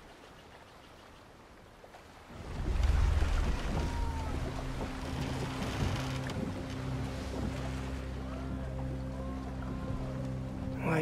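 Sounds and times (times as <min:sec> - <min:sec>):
sea and wind: 0:00.0 - 0:11.0.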